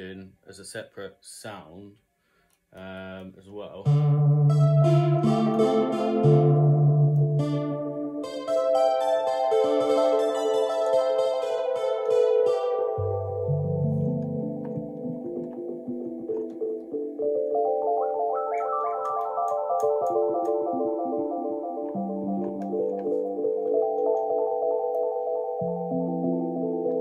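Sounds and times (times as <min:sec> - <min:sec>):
synthesizer bass part: 0:03.8 - 0:24.8
synthesizer chords: 0:03.8 - 0:27.0
quick climbing synth notes: 0:03.9 - 0:24.9.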